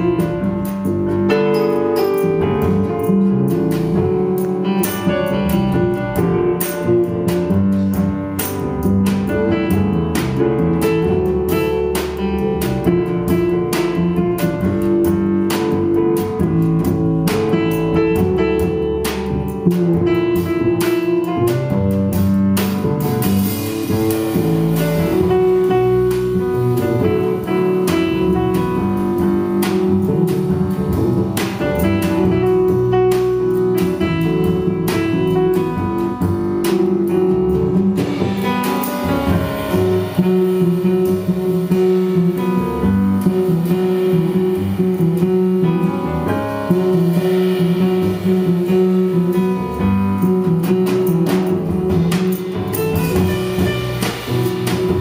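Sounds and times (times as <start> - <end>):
drums and cymbals: 0.0 - 55.0
grand piano: 0.0 - 55.0
plucked double bass: 0.0 - 55.0.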